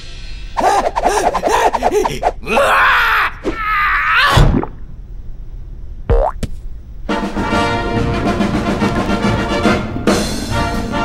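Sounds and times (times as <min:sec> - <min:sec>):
rising boing: 0:06.1 - 0:06.4.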